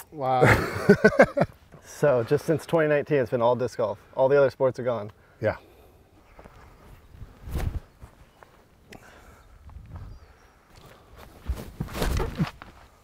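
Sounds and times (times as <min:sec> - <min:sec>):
thump of planted step: 0:07.4 - 0:07.8, 0:11.4 - 0:12.8.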